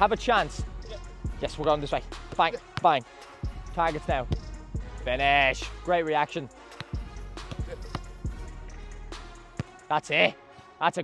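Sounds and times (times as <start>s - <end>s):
boot kicking football: 6.8s - 8.0s.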